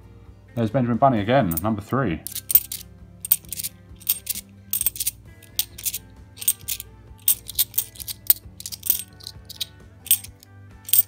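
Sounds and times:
quiet music: 0.0s - 11.0s
coins clinking in the hand: 2.3s - 11.0s.

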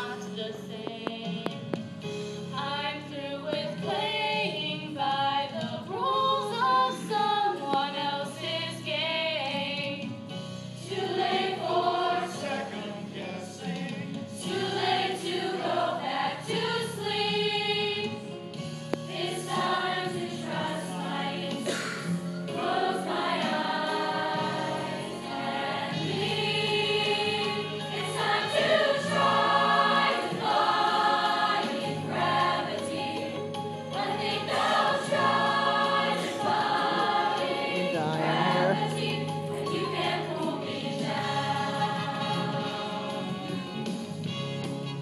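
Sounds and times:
mixed choir singing in harmony: 0.0s - 44.4s.

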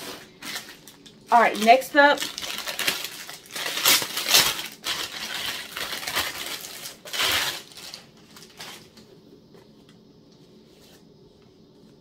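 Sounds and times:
plastic packaging crinkling: 0.0s - 9.1s.

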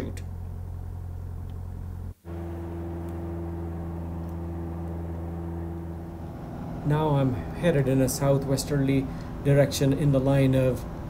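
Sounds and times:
propeller airplane engine droning: 0.0s - 11.0s.

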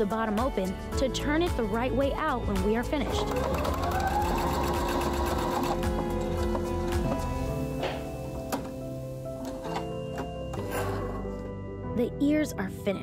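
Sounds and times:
sewing machine stitching: 3.1s - 6.5s.

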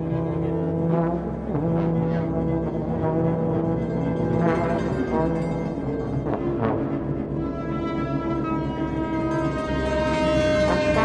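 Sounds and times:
droning trombone low notes: 0.0s - 11.0s.

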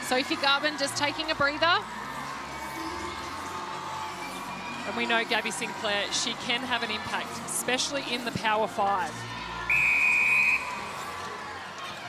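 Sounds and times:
high whistle blast: 9.7s - 10.8s.

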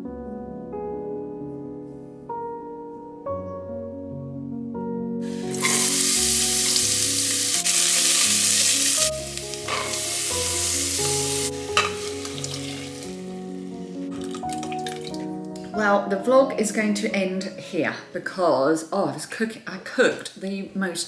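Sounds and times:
background piano music: 0.0s - 19.4s
vegetables sizzling in a pan: 5.2s - 14.4s.

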